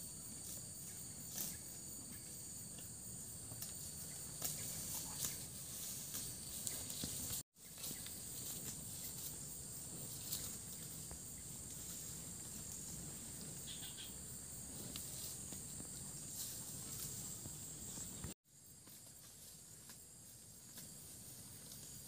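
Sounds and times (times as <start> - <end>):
insects chorus: 0.0 - 22.0.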